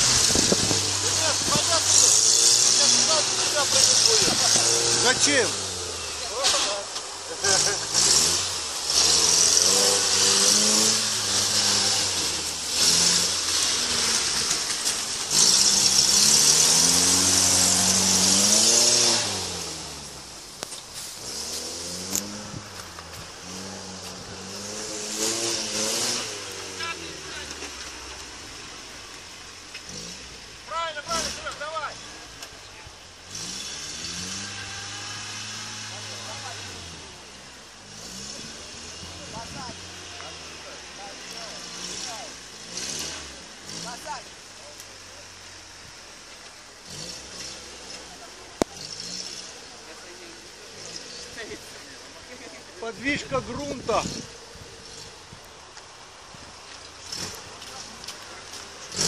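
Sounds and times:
off-road vehicle engine revving: 0:00.0 - 0:59.0.

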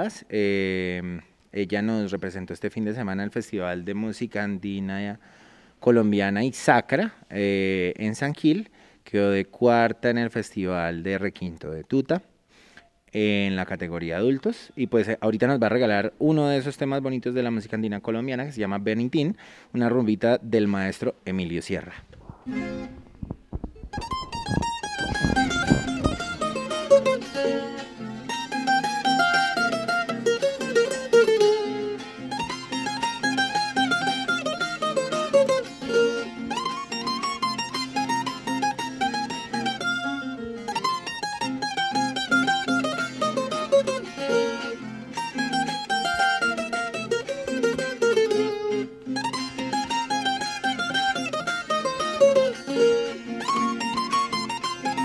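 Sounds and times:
plucked string melody: 0:22.2 - 0:55.0
strummed string accompaniment: 0:22.2 - 0:55.0.

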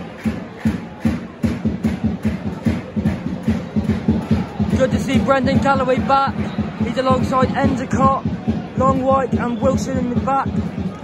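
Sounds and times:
bass drum beating: 0:00.0 - 0:11.0
crowd noise: 0:00.0 - 0:11.0.

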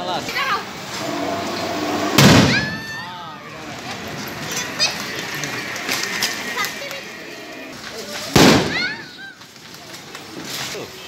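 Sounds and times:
firework bursting with a bang: 0:02.0 - 0:03.0, 0:08.3 - 0:09.1.

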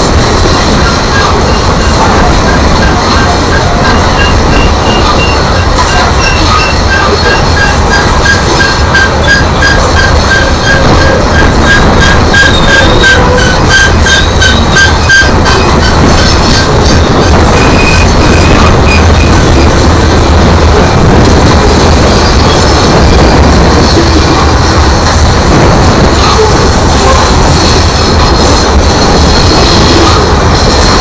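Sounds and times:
train wheels rumbling on rail: 0:00.0 - 0:31.0
crossing signal bell ringing: 0:01.3 - 0:16.1.

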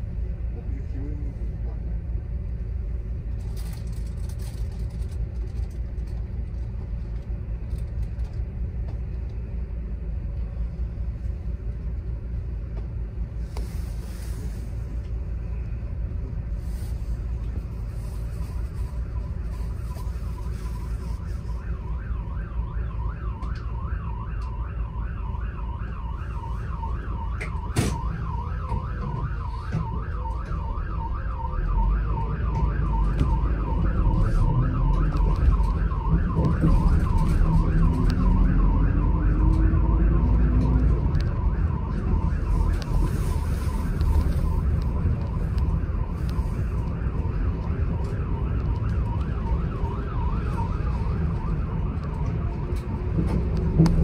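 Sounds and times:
bus engine and road rumble: 0:00.0 - 0:54.0
siren yelping: 0:18.9 - 0:54.0.

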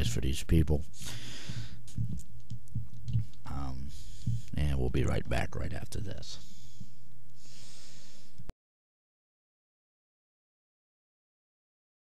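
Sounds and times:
electrical hum: 0:00.0 - 0:08.5
breathy exhale into microphone: 0:01.0 - 0:01.8, 0:06.4 - 0:08.4.

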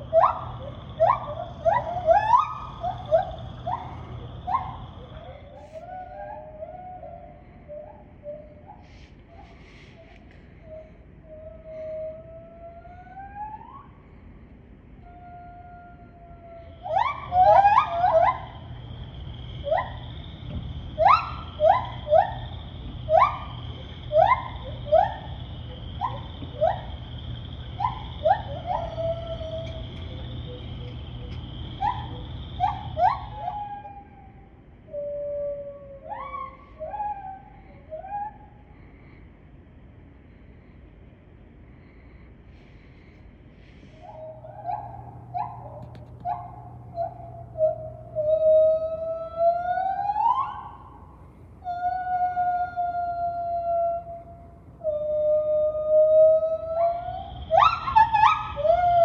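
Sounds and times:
gibbons hooting and whooping: 0:00.0 - 0:14.0, 0:15.0 - 0:38.6, 0:43.8 - 0:59.0
steady high hum: 0:00.0 - 0:59.0.

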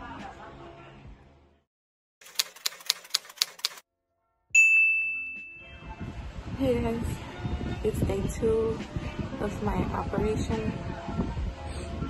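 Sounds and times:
typewriter keystrokes: 0:02.2 - 0:03.8.

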